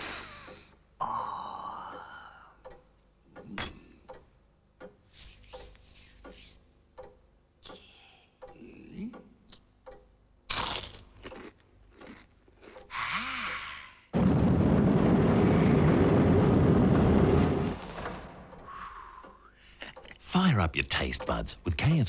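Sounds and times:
crunchy bite into fried chicken: 10.5s - 12.8s
short sharp gasp: 12.9s - 14.1s, 18.7s - 19.6s.

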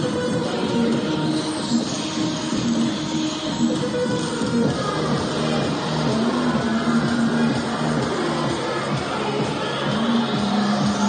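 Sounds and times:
music over sound system: 0.0s - 11.0s.

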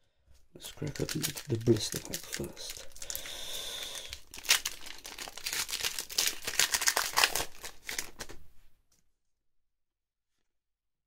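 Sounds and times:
foil wrapper crinkling: 0.6s - 8.4s
foil wrapper ripping: 0.8s - 8.4s.

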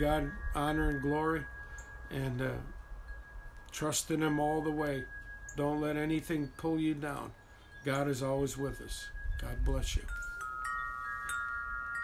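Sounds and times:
wind chimes ringing: 0.0s - 12.0s.

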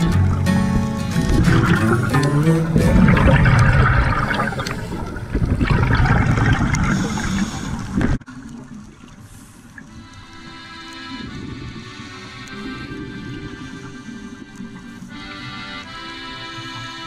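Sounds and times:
song playing: 0.0s - 4.6s
underwater exhaust bubbles rushing: 0.2s - 9.9s.

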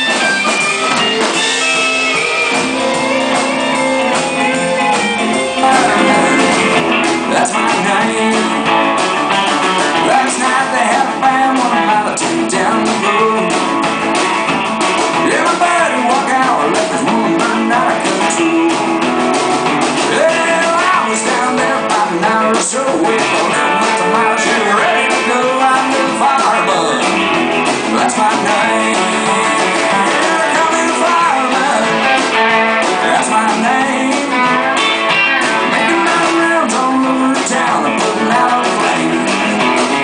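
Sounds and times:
live country-rock band: 0.0s - 40.0s.

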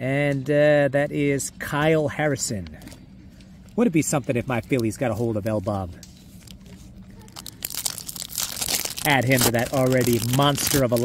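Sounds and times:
foil wrapper crinkling: 6.4s - 11.0s.

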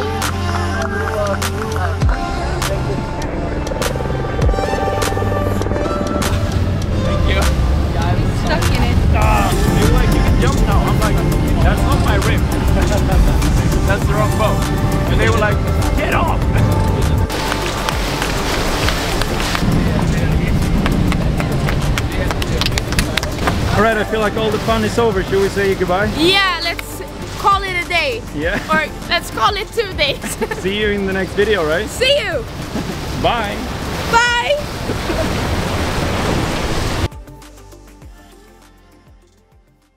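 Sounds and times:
background music: 0.0s - 34.8s, 36.3s - 39.9s
motorboat water noise: 0.0s - 37.2s
rushing wind: 2.8s - 37.1s.

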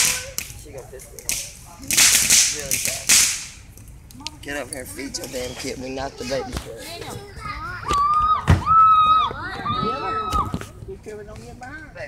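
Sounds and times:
firework cracks: 0.0s - 4.4s
hissing spray of sparks: 1.2s - 3.6s.

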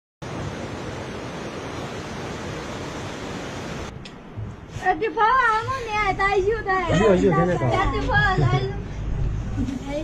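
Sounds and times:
river rushing: 0.2s - 4.0s.

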